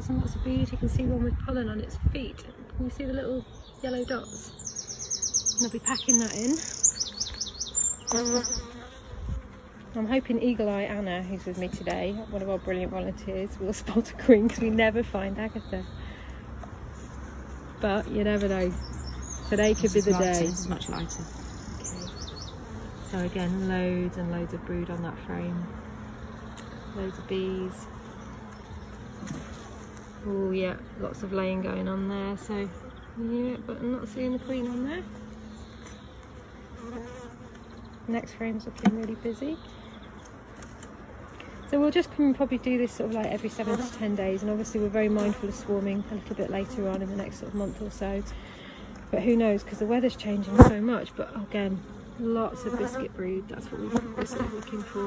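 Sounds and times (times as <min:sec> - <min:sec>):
honeybees buzzing: 0:00.0 - 0:55.0.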